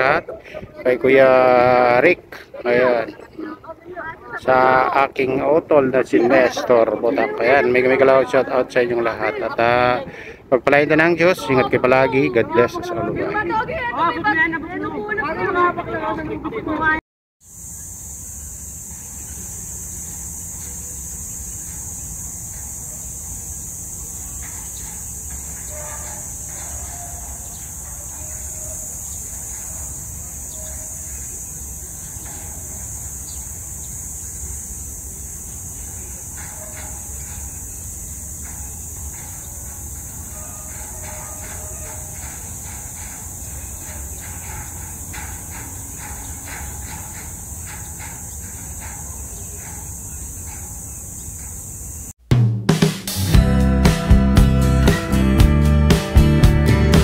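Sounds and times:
high hiss: 0:17.4 - 0:52.2
faint ticking: 0:18.2 - 0:52.1.

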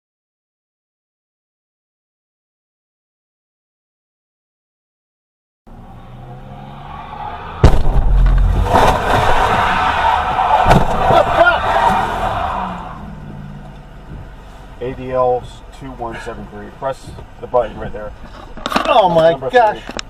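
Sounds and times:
car running: 0:05.7 - 0:20.0
car crash: 0:06.2 - 0:13.5
bang: 0:07.5 - 0:12.9.

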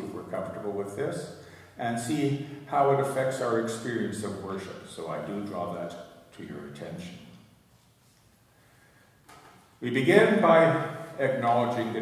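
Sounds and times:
man's voice: 0:09.8 - 0:12.0.

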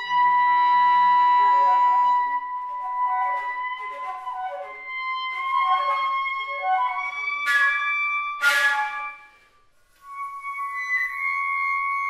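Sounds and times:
flute and clarinet held tones: 0:00.0 - 0:12.0.

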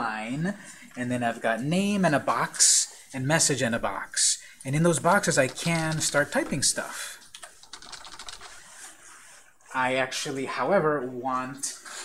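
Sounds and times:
fast typing on keyboard: 0:05.0 - 0:08.6.

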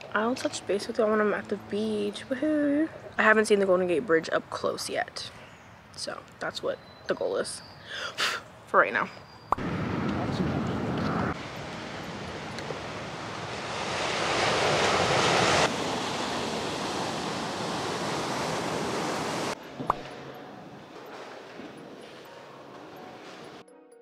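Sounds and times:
wind on microphone: 0:09.6 - 0:19.5
ocean surf on sandy beach: 0:11.2 - 0:19.6.

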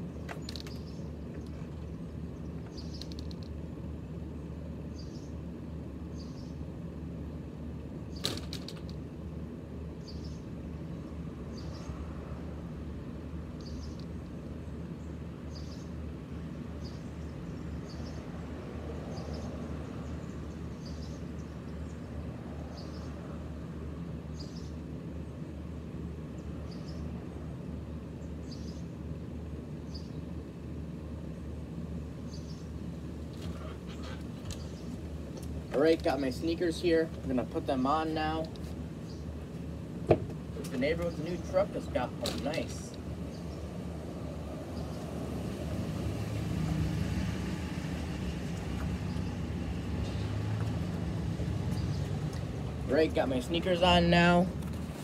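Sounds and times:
low rumble of traffic: 0:00.0 - 0:55.0
bird chirping: 0:00.1 - 0:03.4, 0:04.9 - 0:05.4, 0:06.1 - 0:06.6, 0:10.0 - 0:12.0, 0:13.6 - 0:16.0, 0:16.8 - 0:18.4, 0:19.1 - 0:22.1, 0:26.4 - 0:27.1, 0:28.2 - 0:28.9, 0:29.8 - 0:30.3, 0:32.2 - 0:32.8, 0:33.4 - 0:35.1, 0:39.0 - 0:39.4, 0:40.6 - 0:43.8, 0:51.7 - 0:54.0.

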